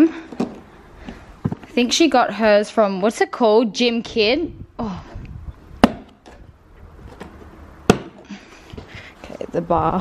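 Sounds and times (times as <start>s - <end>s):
handling noise: 5.8s - 9.5s.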